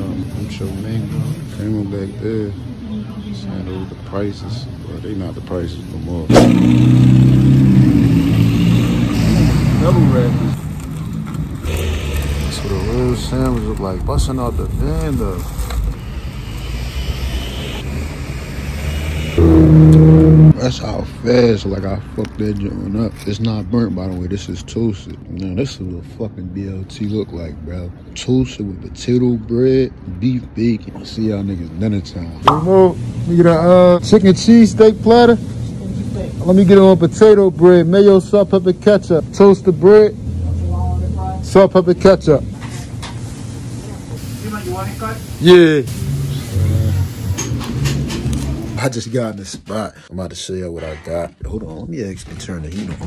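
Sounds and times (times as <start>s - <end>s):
city street traffic rumble: 0.0s - 53.0s
low hum: 14.6s - 20.8s
steady hiss: 43.2s - 47.9s.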